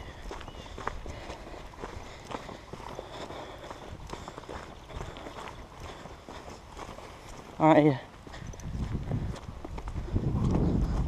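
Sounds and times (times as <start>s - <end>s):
footsteps crunching on gravel: 0.0s - 11.0s
wind rumbling on microphone: 8.2s - 11.0s.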